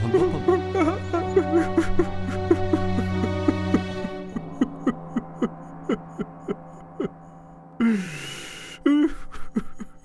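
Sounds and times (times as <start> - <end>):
low drone: 0.0 - 10.0.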